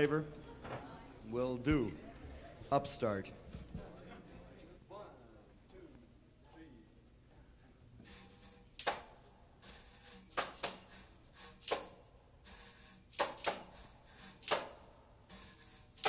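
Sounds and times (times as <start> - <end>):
tambourine jingling: 3.4 - 4.0, 8.0 - 16.0.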